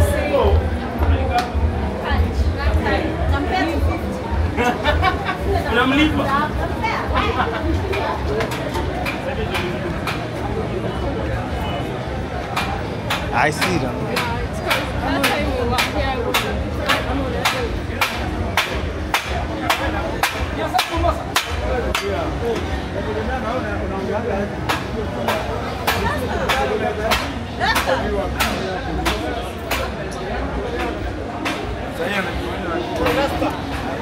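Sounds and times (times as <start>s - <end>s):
crowd murmur: 0.0s - 34.0s.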